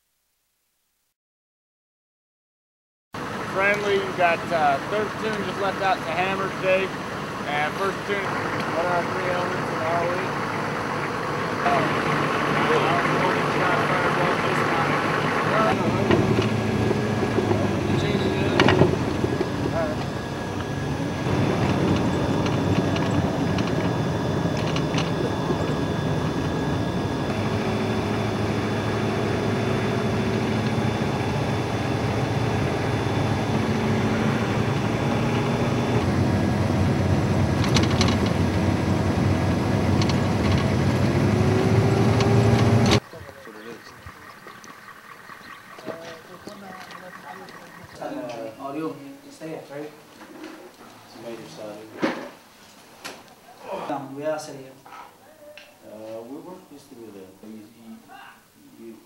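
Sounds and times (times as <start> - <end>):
vehicle engine running: 3.2 - 48.9
road noise: 3.2 - 53.4.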